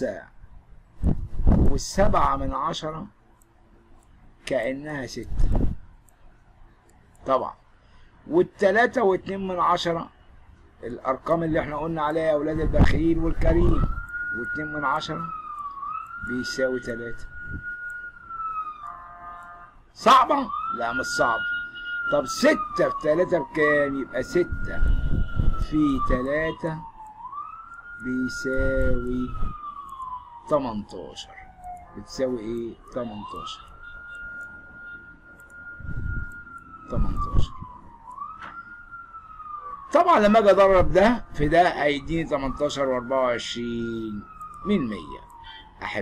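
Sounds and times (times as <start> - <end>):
emergency vehicle siren wailing: 0.0 - 46.0
high-pitched whistle-like tone: 16.9 - 18.1, 33.1 - 37.6.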